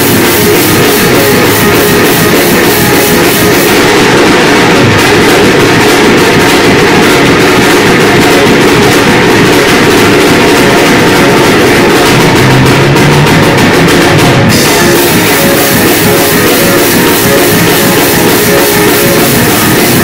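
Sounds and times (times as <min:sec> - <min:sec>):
band music: 0:00.0 - 0:20.0
drums: 0:00.0 - 0:20.0
guitar: 0:00.0 - 0:20.0.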